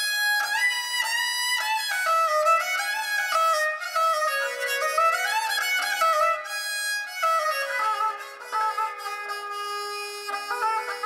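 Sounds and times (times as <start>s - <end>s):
bowed string melody: 0.0s - 11.0s.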